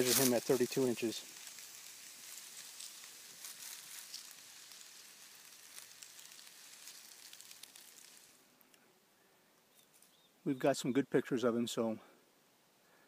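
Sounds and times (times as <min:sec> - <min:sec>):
rattlesnake rattling: 0:00.0 - 0:08.4.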